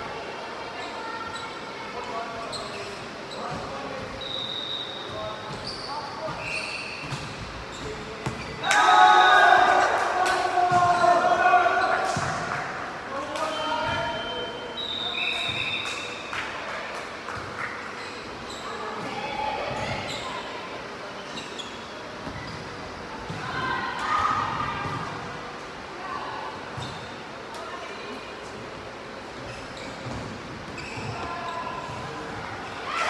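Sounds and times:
sneakers squeaking on floor: 0.8s - 8.7s, 13.5s - 16.2s, 17.4s - 23.7s, 26.8s - 27.2s, 29.3s - 33.0s
players shouting and cheering: 8.6s - 13.0s
volleyball hits: 9.5s - 11.3s.

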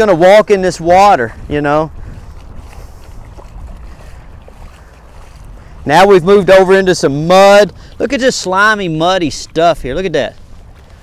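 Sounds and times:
boots splashing through water: 0.0s - 11.0s
dog paws splashing: 0.0s - 11.0s
wind noise on microphone: 0.0s - 11.0s.

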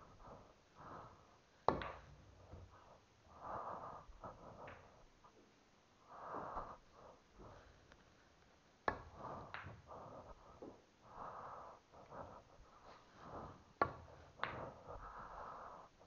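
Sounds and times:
breathing close to microphone: 0.0s - 5.4s, 6.0s - 16.0s
pool balls clicking: 1.6s - 2.4s.

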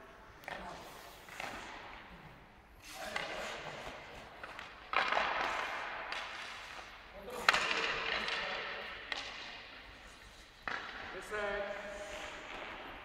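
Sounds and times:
hockey sticks cracking against pucks: 0.4s - 2.1s, 2.9s - 13.0s.

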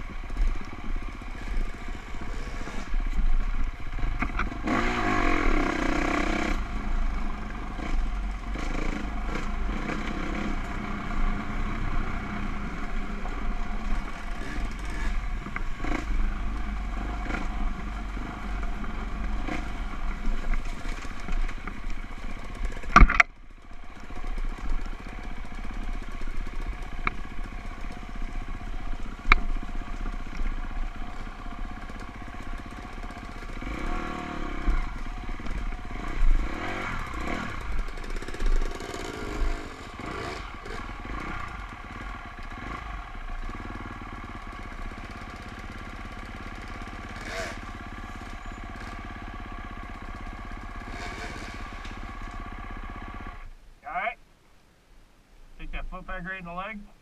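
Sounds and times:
dirt bike engine running: 0.0s - 54.2s.

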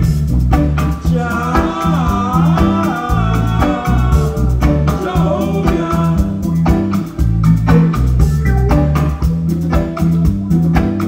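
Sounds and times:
deep bass line: 0.0s - 11.0s
drums: 0.0s - 11.0s
reggae band playing: 0.0s - 11.0s
wavering melodic lead: 1.1s - 11.0s.

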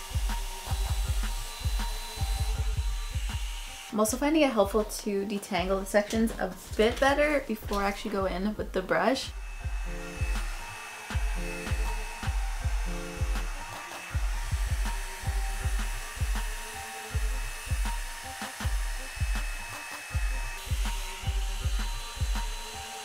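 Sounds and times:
background music with steady beat: 0.0s - 23.0s
blow-dryer brush rushing: 9.3s - 23.0s.

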